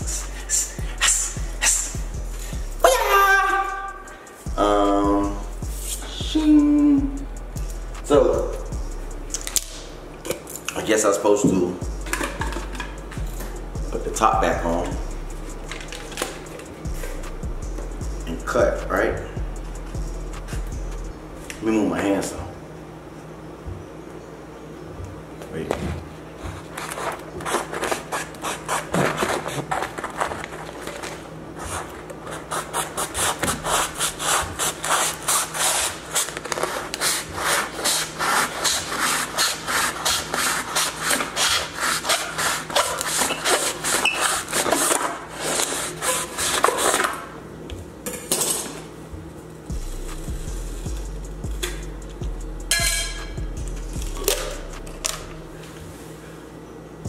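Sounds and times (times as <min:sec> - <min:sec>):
knocks and handling sounds: 0:11.5 - 0:13.2
knife sawing through cardboard tube: 0:26.8 - 0:30.3, 0:31.6 - 0:47.0.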